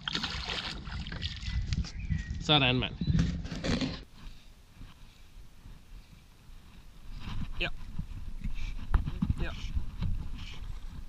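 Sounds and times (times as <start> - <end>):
wind rumble on microphone: 0.6 - 3.6, 4.8 - 11.0.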